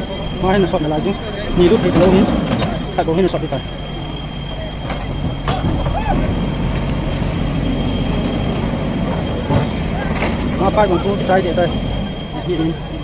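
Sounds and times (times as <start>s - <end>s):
diesel engine running: 0.0s - 13.0s
voices of onlookers: 0.0s - 13.0s.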